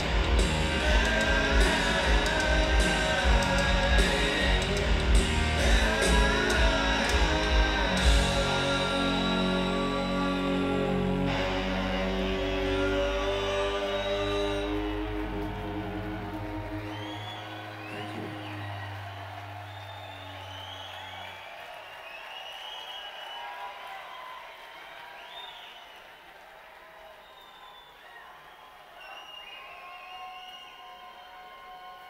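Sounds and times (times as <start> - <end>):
rock band chord on electric guitars: 0.0 - 18.8.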